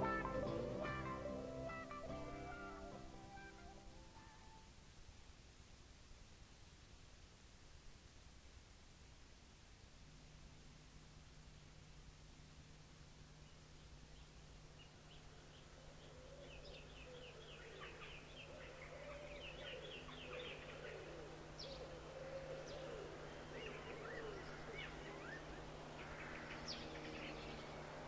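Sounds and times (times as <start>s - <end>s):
birds chirping: 0.0s - 4.6s, 13.4s - 28.0s
steady low hum: 0.0s - 5.1s, 9.4s - 28.0s
low bird warbling: 15.8s - 27.9s.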